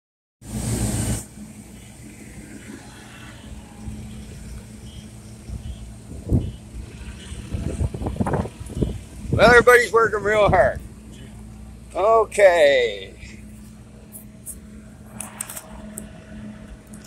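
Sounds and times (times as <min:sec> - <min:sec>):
loud rush of noise: 0:00.4 - 0:04.7
forklift and truck engines running: 0:00.4 - 0:17.0.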